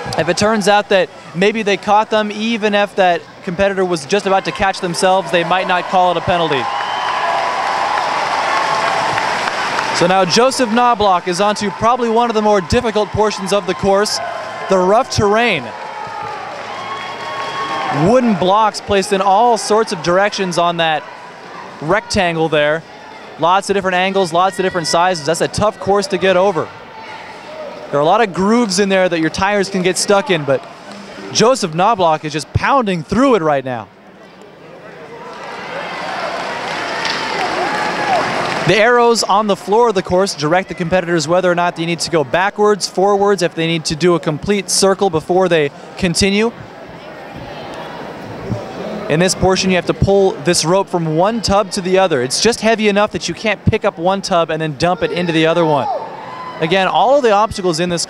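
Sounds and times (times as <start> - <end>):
crowd calling out and cheering: 0.0 - 58.0
audience applauding and cheering: 4.4 - 21.7, 35.2 - 39.0.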